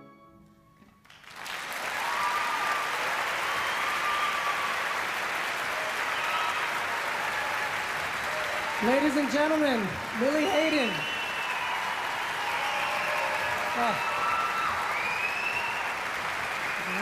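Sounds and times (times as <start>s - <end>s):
audience applauding: 1.0s - 17.0s
whoops and cheers: 1.8s - 9.0s, 10.2s - 17.0s.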